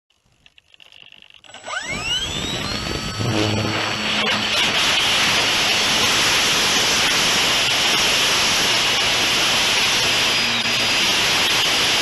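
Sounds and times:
electric propeller motor whining: 0.6s - 12.0s.

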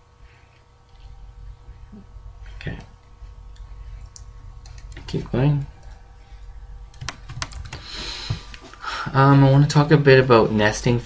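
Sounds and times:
computer keyboard keys clicking: 3.5s - 5.1s, 6.9s - 7.8s.

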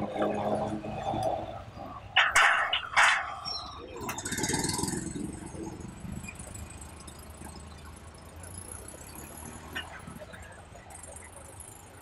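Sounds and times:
small motorcycle engine passing: 4.0s - 10.4s.

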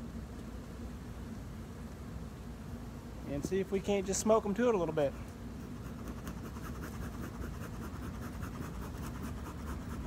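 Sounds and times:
bee smoker scratchy strokes: 5.3s - 10.0s.

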